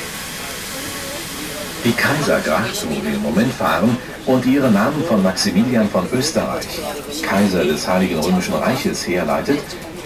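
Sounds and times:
faint low voices: 0:00.0 - 0:10.0
steady hissing in boat cabin: 0:00.0 - 0:10.0.

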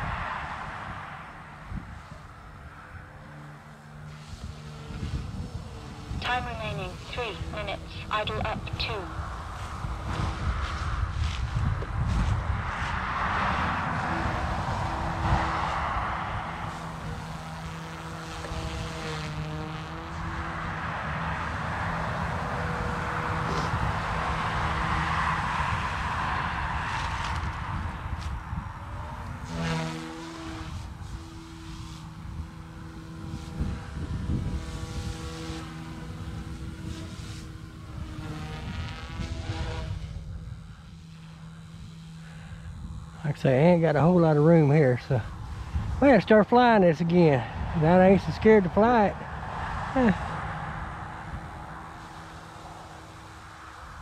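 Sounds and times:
rotor whoosh: 0:00.0 - 0:54.0
rc helicopter motors whining: 0:01.4 - 0:54.0.

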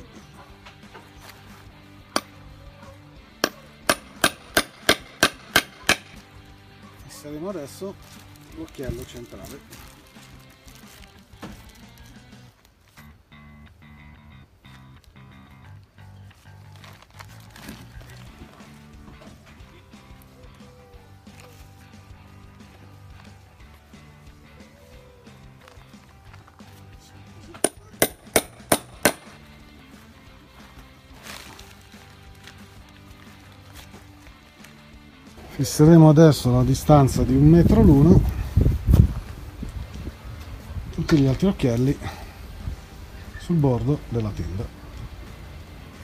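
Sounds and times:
background music with steady beat: 0:00.0 - 0:46.0
hammer striking metal tool: 0:03.4 - 0:06.2, 0:27.6 - 0:29.3.

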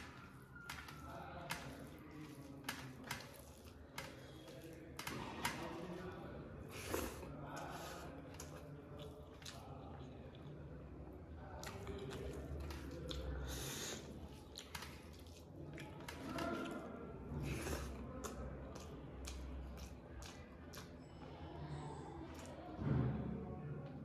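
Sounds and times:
wet chewing and squishing: 0:00.0 - 0:21.5, 0:22.2 - 0:22.8.

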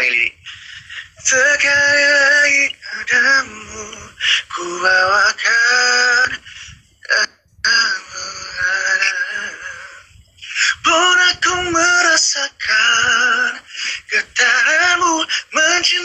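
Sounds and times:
breaths: 0:00.4 - 0:01.2, 0:04.2 - 0:04.5, 0:06.4 - 0:07.0, 0:09.8 - 0:10.8, 0:13.6 - 0:14.1, 0:15.3 - 0:15.5
man singing unaccompanied: 0:01.0 - 0:16.0.

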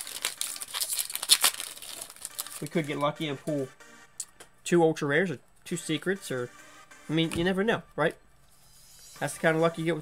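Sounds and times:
foil wrapper crinkling: 0:00.0 - 0:03.0.

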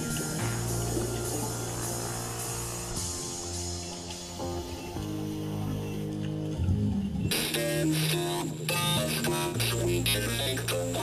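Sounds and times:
electronic music: 0:00.0 - 0:11.0
guitar over low tones: 0:00.0 - 0:11.0.

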